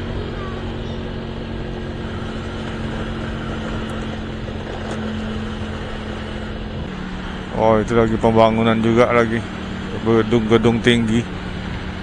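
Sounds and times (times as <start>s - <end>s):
road and wind noise: 0.0s - 12.0s
vehicle engine hum: 0.0s - 12.0s.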